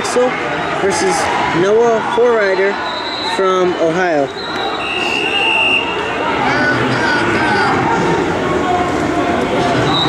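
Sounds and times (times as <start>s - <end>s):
spectators murmuring and shouting: 0.0s - 10.0s
referee's whistle blast: 2.7s - 3.6s, 4.3s - 6.0s.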